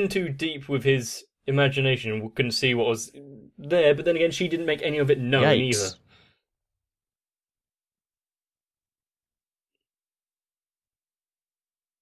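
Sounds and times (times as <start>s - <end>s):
faint exhale: 6.0s - 6.4s.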